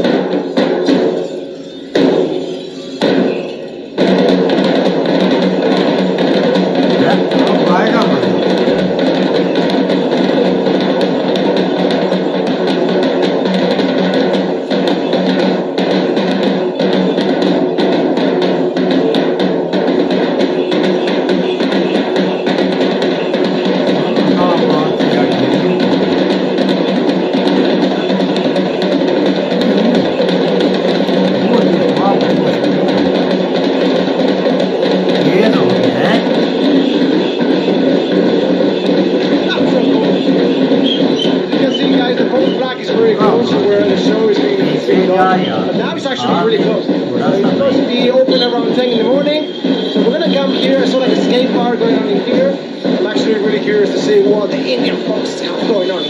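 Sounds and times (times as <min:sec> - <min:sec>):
drums struck with sticks: 0:04.0 - 0:53.4
crowd voices: 0:06.9 - 0:13.5, 0:23.8 - 0:34.3, 0:35.1 - 0:56.0.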